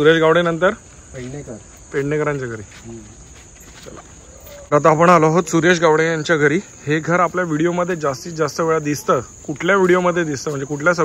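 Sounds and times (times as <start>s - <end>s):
crickets trilling: 0.0s - 11.0s
voices chanting in response: 2.8s - 11.0s.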